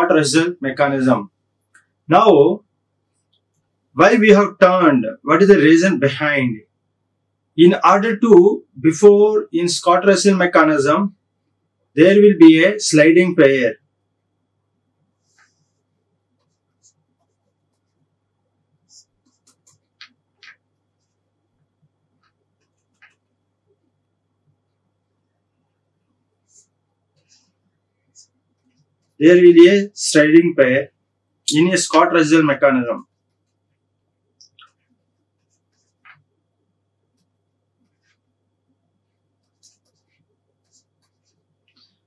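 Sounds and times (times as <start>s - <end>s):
pen scratching on tablet: 15.2s - 18.2s, 18.8s - 21.3s, 34.7s - 36.3s, 37.1s - 38.3s, 39.0s - 42.0s.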